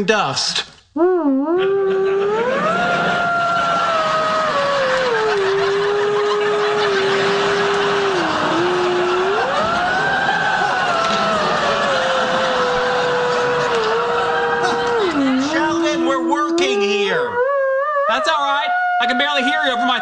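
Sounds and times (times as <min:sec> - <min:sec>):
theremin melody: 0:01.0 - 0:20.0
audience laughter: 0:01.9 - 0:15.9.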